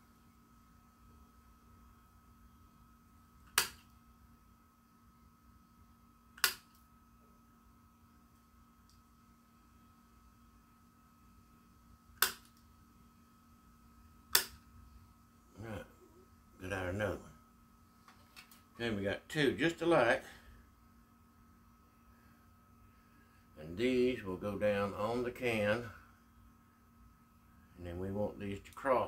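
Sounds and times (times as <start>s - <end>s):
faint steady hum: 0.0s - 29.0s.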